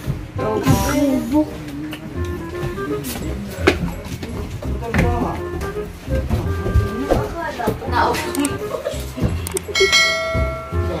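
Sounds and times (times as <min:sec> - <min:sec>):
dull low thumps: 0:02.1 - 0:07.9
bell chime ringing: 0:09.6 - 0:11.0.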